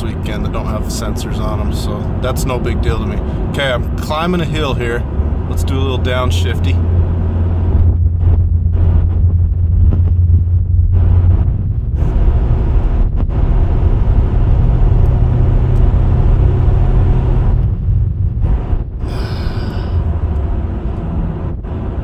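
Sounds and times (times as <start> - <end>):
car engine revving uphill: 0.0 - 22.0.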